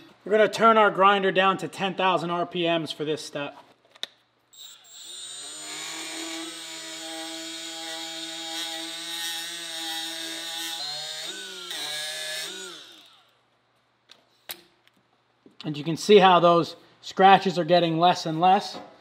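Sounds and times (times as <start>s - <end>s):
die grinder whining: 4.6s - 13.4s.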